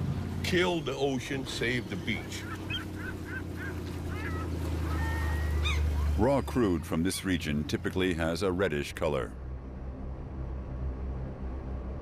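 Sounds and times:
steady low drone: 0:00.0 - 0:12.0
birds calling: 0:00.8 - 0:07.8.

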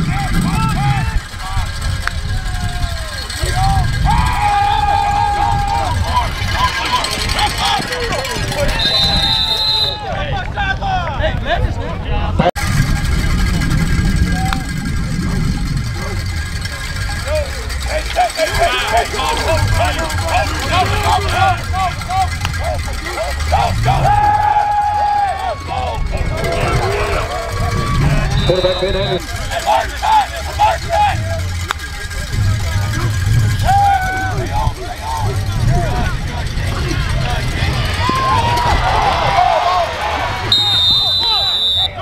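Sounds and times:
steady low rumble: 0:00.0 - 0:09.6, 0:10.4 - 0:42.0
players shouting calls: 0:00.0 - 0:11.2, 0:16.3 - 0:42.0.

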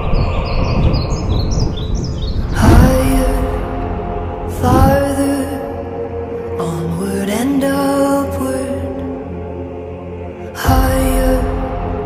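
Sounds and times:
small birds chirping: 0:00.0 - 0:03.1
dense low rumble: 0:00.0 - 0:06.5.

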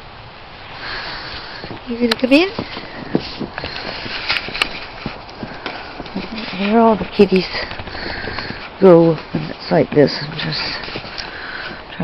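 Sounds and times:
footsteps in wet snow: 0:00.7 - 0:12.0.

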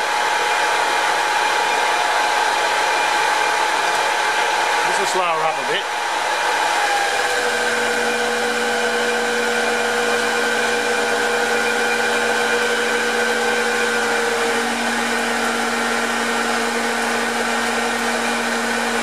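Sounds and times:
metal lathe humming and whining: 0:06.0 - 0:19.0.

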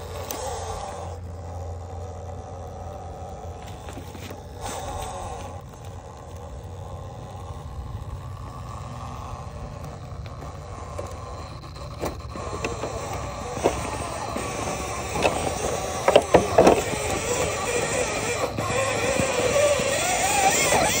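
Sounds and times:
steady low rumble: 0:00.0 - 0:20.0
tyres scraping and clicking on rock: 0:00.0 - 0:21.0.

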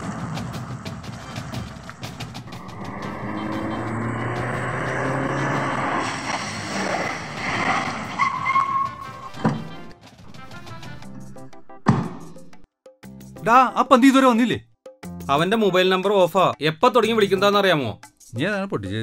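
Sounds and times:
car engine driving up: 0:00.0 - 0:09.8
background music: 0:00.0 - 0:19.0
thump: 0:11.8 - 0:12.4.

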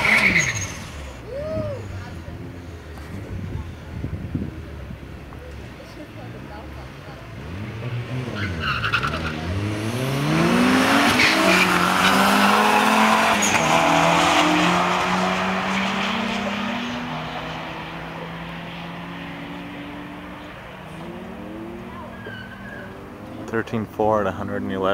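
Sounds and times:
car engine accelerating hard: 0:05.6 - 0:24.9.

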